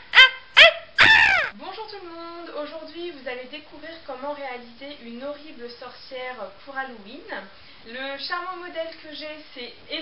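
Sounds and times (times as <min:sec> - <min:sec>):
high-pitched cackling laugh: 0:00.0 - 0:01.5.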